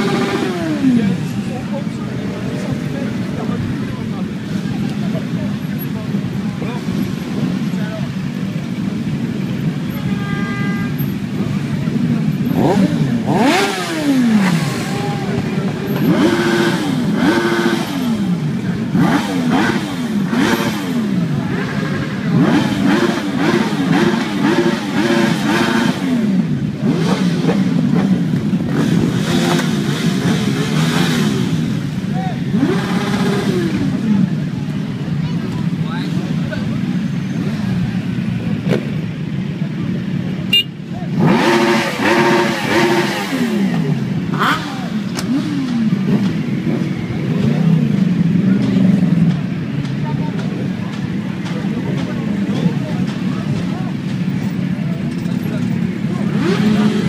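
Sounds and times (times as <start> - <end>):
many engines running at low revs: 0.0 - 57.0
motorcycle engines revving: 0.0 - 57.0.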